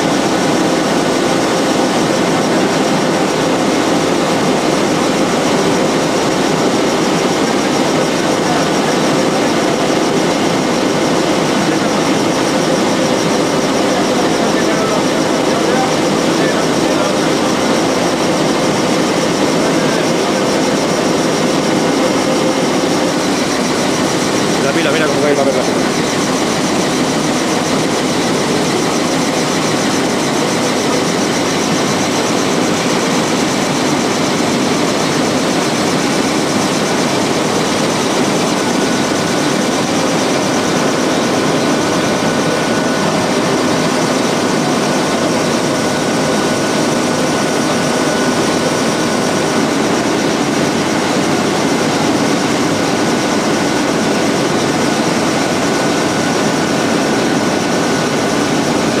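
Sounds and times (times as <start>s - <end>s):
paper machine mechanical din: 0.0s - 59.0s.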